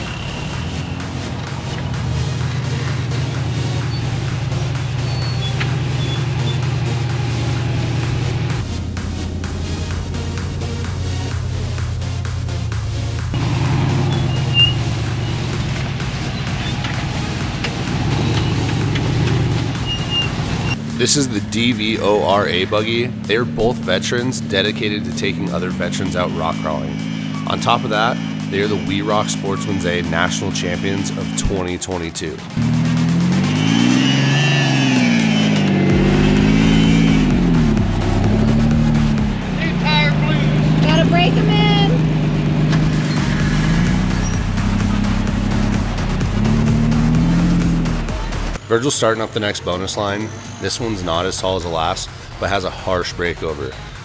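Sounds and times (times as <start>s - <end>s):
background music: 0.0s - 54.0s
buggy engine running: 0.0s - 54.0s.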